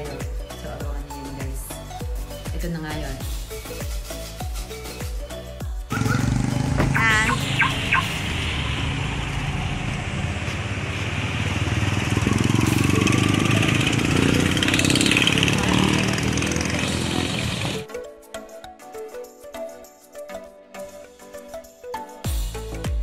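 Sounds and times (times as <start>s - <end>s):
motorcycle engines running: 5.9s - 17.8s
warbling tone: 5.9s - 17.8s.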